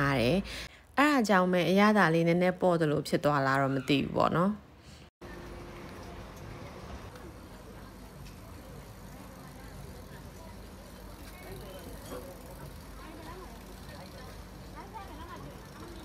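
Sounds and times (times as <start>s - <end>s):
traffic hum: 4.6s - 16.0s
faint voices of people: 5.2s - 16.0s.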